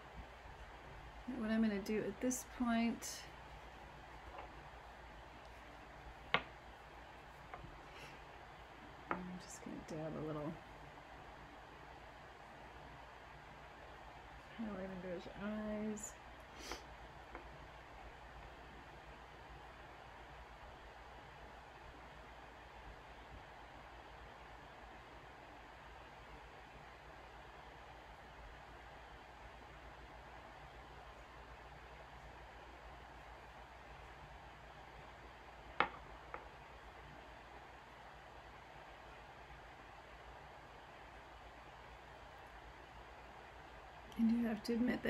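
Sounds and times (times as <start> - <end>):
faint steady hiss: 0.0 - 45.0.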